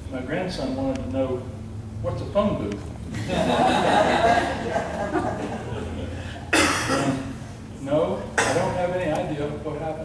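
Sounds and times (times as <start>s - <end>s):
person coughing: 6.5s - 7.3s, 8.4s - 8.8s.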